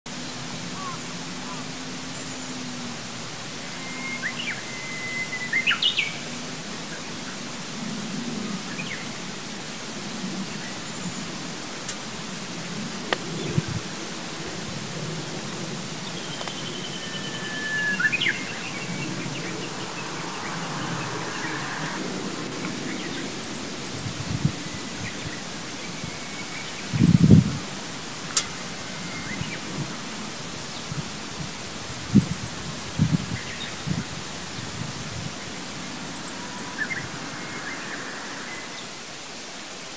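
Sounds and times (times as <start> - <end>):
steady background hiss: 0.1 - 39.9
bird chirps and calls: 16.1 - 22.1.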